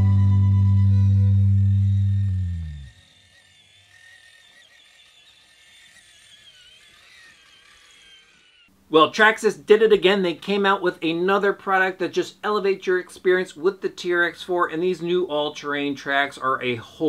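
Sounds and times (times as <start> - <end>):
low note of background music: 0.0 - 3.2
high whine of electric motor: 0.0 - 8.7.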